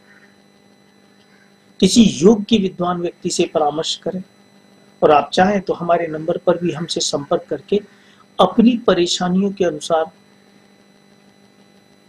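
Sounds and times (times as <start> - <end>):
faint mains hum: 0.0 - 12.0
thin high steady tones: 0.0 - 12.0.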